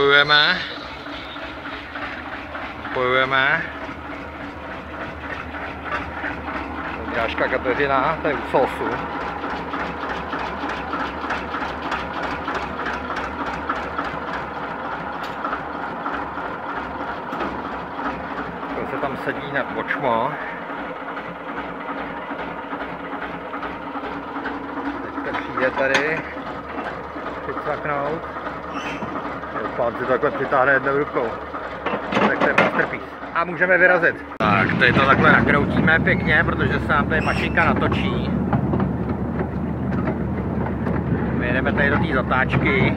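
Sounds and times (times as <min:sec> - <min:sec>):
voices talking: 0:00.0 - 0:09.8, 0:18.7 - 0:20.7, 0:24.8 - 0:38.4, 0:41.3 - 0:42.9
diesel locomotive engine running: 0:00.0 - 0:42.9.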